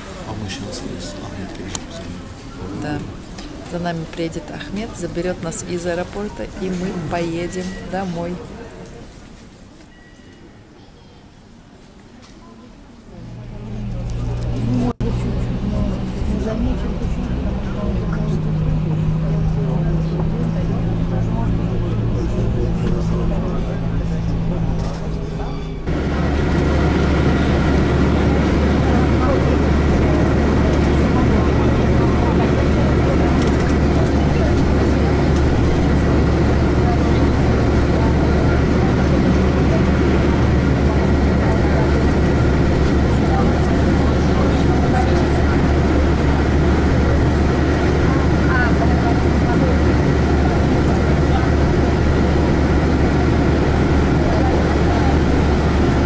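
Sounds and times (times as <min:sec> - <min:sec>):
bus engine and road drone: 0:00.0 - 0:09.9, 0:11.4 - 0:56.0
passengers talking: 0:00.0 - 0:56.0.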